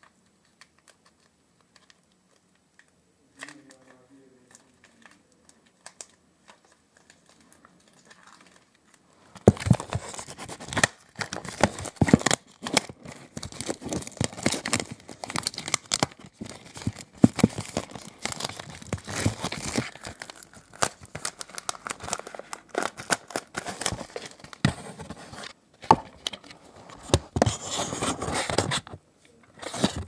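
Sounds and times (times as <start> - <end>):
plastic wrap crinkling: 0.0 - 28.9.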